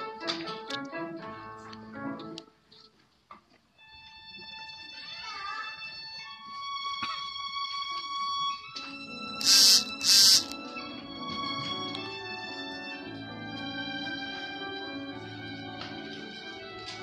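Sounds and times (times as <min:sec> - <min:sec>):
piano: 0:00.0 - 0:02.9, 0:07.9 - 0:17.0
loud hiss bursts: 0:09.4 - 0:10.6.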